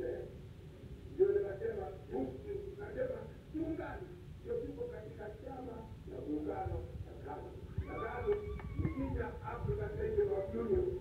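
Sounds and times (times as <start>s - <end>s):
man speaking through public address: 1.1s - 11.0s.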